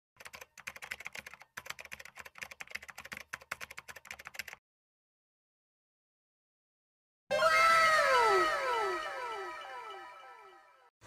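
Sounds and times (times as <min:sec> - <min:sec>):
keyboard typing clicks: 0:00.2 - 0:04.6.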